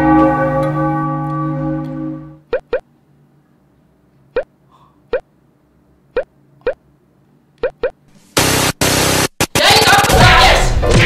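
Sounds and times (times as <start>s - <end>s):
cartoon plop blips: 2.5s - 2.8s, 6.2s - 6.8s, 7.6s - 8.0s
loud static hiss: 8.0s - 10.6s.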